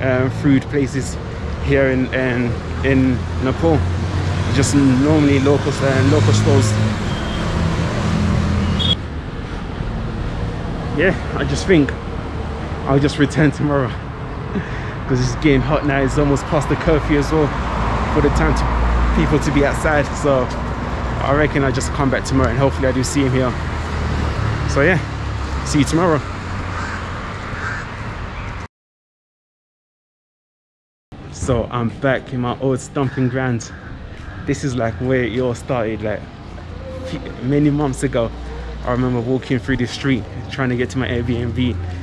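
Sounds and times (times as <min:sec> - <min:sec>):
vehicle engine humming: 0:00.0 - 0:28.4, 0:31.2 - 0:42.0
outdoor street noise: 0:00.0 - 0:28.7, 0:31.1 - 0:42.0
traffic background: 0:00.0 - 0:28.7, 0:31.1 - 0:42.0
crow cawing: 0:26.2 - 0:28.5, 0:33.0 - 0:34.6.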